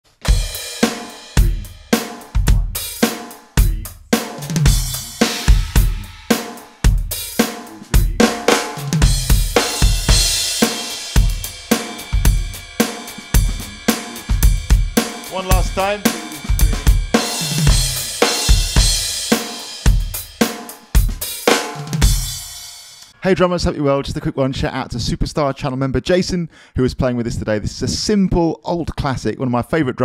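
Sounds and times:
electronic drum groove: 0.1 - 23.1
cymbal wash: 8.7 - 20.8.

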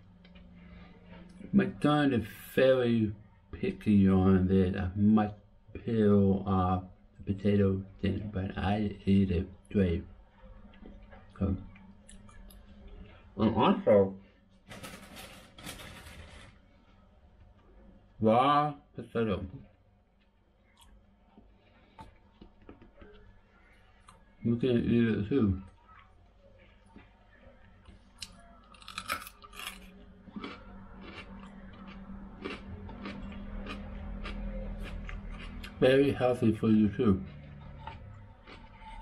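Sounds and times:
crunching raw potato: 26.7 - 39.0.

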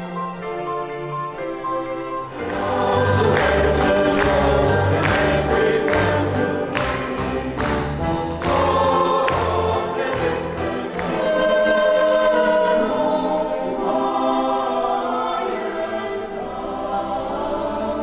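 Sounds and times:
symphony orchestra: 0.0 - 18.0
mixed choir singing: 2.3 - 18.0.

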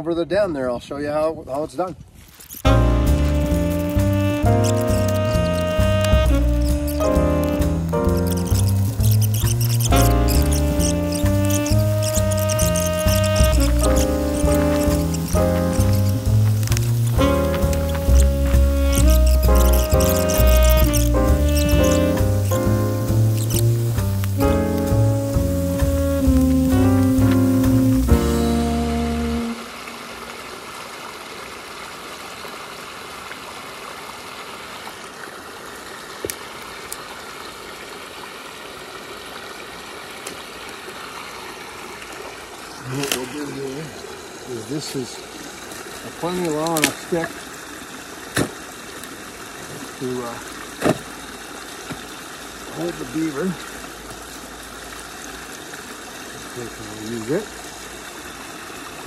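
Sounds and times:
water trickling: 2.2 - 59.0
music: 2.7 - 29.7.

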